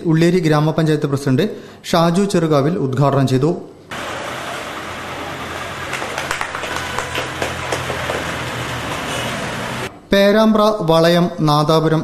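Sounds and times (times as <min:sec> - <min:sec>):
crowded shop background noise: 0:03.7 - 0:10.2.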